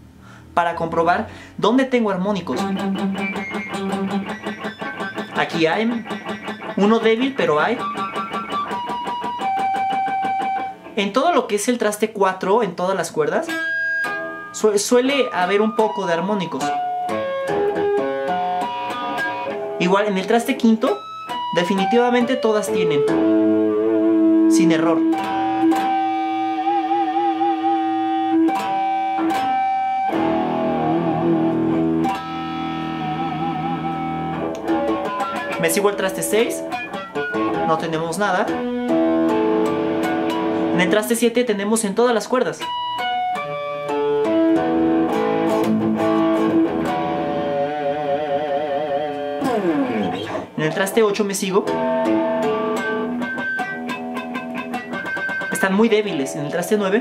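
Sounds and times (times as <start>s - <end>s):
electric guitar harmonics: 0.8s - 11.8s, 13.0s - 57.0s.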